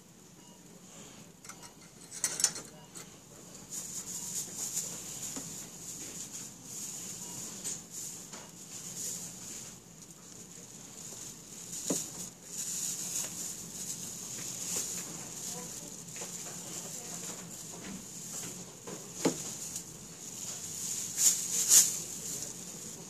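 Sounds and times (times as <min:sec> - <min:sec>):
plastic bag rustling and crinkling: 0:03.5 - 0:23.0.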